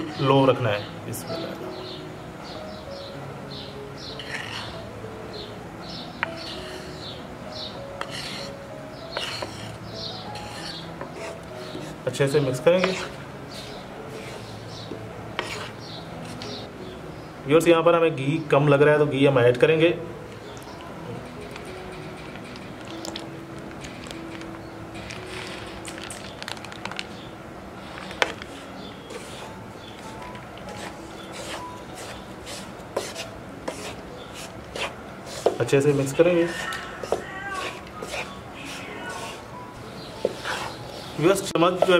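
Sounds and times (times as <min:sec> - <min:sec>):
wooden spatula scraping a pan: 0:04.2 - 0:04.8, 0:06.3 - 0:07.2, 0:08.0 - 0:16.7, 0:27.8 - 0:41.9.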